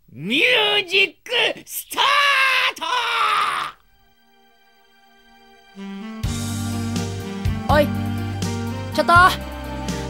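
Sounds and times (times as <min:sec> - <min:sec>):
person shouting: 0:00.2 - 0:03.8
faint music with held notes: 0:03.8 - 0:10.0.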